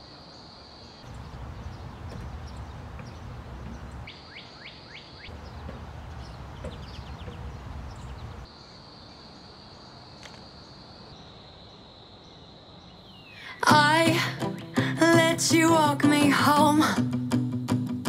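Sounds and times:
low rumbling background noise: 0:01.0 - 0:04.1, 0:05.3 - 0:10.1.

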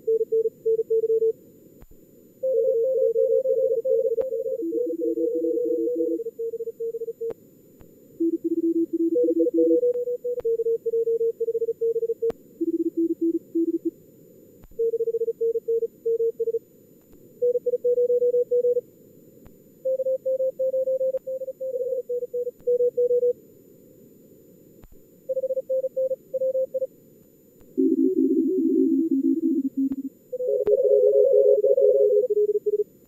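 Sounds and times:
fast morse code: 0:27.8 - 0:32.8.

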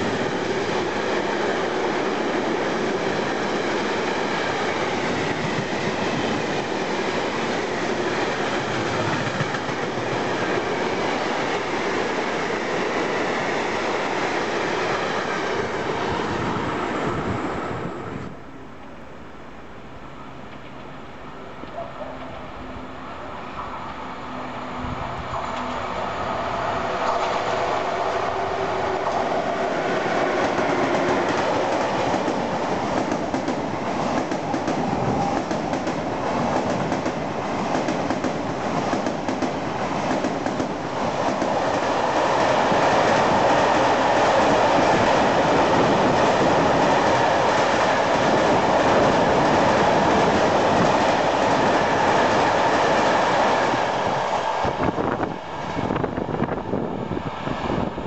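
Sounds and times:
train wheels clickety-clack: 0:07.4 - 0:12.0, 0:29.0 - 0:55.3.

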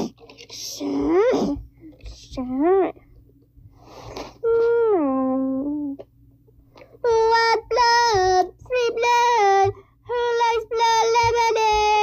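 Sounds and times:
child singing wordless notes: 0:07.0 - 0:12.0.

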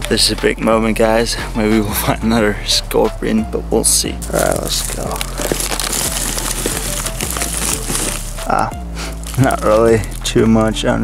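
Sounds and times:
background music: 0:00.0 - 0:11.0
dry pine needles crunching: 0:04.2 - 0:11.0.

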